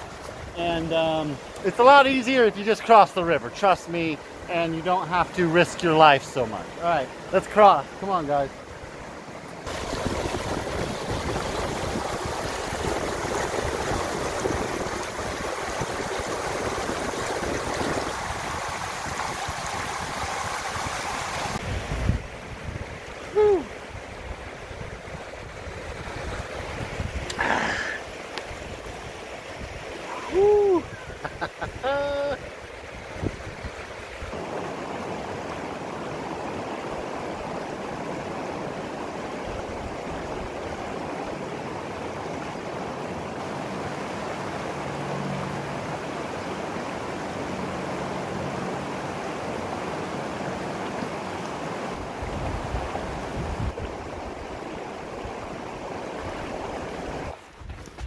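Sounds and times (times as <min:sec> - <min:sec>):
river rushing over rocks: 0:00.0 - 0:57.4.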